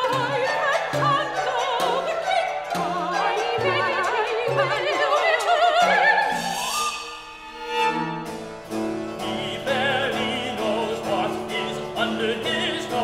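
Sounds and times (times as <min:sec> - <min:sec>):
opera singer: 0:00.0 - 0:07.2, 0:08.9 - 0:13.0
bowed strings playing: 0:00.0 - 0:13.0.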